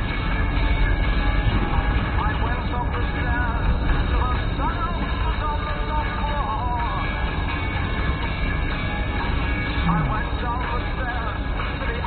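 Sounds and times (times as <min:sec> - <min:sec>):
car engine and tyre rumble: 0:00.0 - 0:12.0
music with voice: 0:00.0 - 0:12.0.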